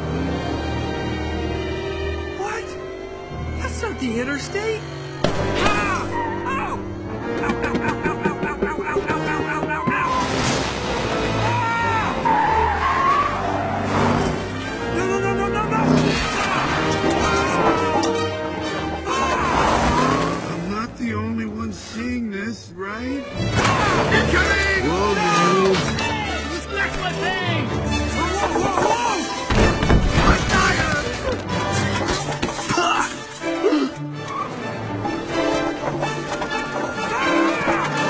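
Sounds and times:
race car engine: 0.0s - 8.4s, 10.2s - 21.8s
background music: 0.0s - 38.0s
tyres squealing: 3.6s - 20.9s, 22.9s - 38.0s.

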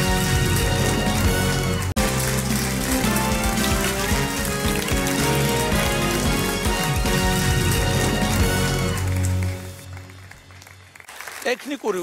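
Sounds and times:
television theme music: 0.0s - 12.0s.

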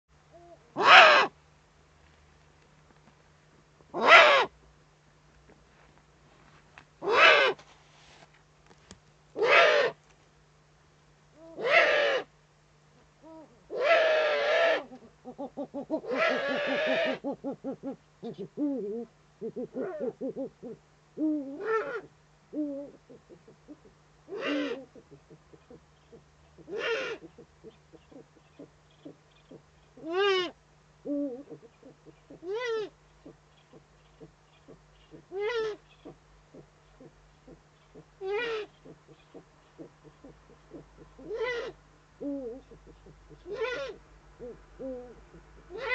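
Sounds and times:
owl hoarse call: 0.4s - 1.4s, 3.9s - 4.6s, 7.0s - 7.6s, 9.4s - 10.0s, 11.4s - 12.3s, 13.2s - 45.9s.

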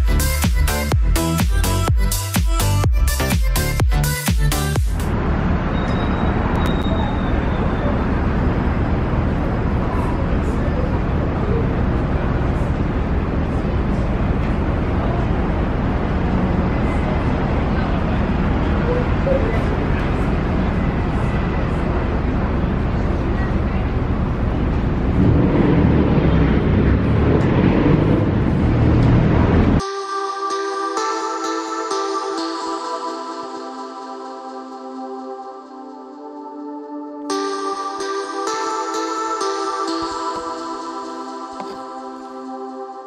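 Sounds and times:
city street traffic: 0.0s - 29.9s, 37.2s - 43.0s.

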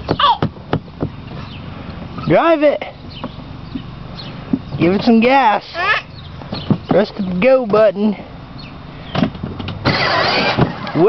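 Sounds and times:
loud burst of noise: 9.8s - 11.0s
toy truck motor running: 9.8s - 11.0s.

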